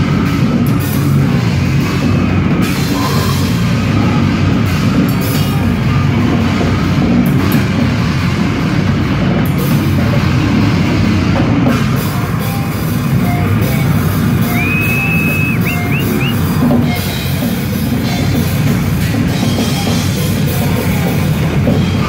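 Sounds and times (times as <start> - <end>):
death-grind band playing: 0.0 - 22.0
high-pitched guitar squeal: 12.4 - 17.4.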